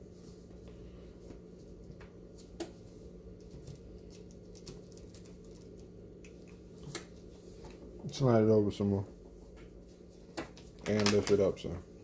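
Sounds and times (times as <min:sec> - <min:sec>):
steady low hum: 0:00.0 - 0:12.0
paper and tape handling: 0:10.4 - 0:11.5.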